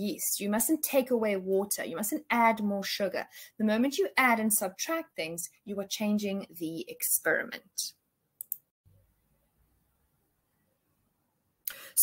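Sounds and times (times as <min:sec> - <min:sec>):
sharp clicks: 0:08.4 - 0:08.7.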